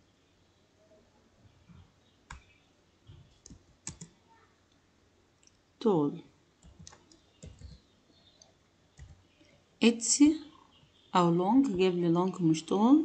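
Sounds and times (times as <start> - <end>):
computer keyboard keystrokes: 3.4 - 4.1, 6.6 - 7.8, 9.0 - 9.2.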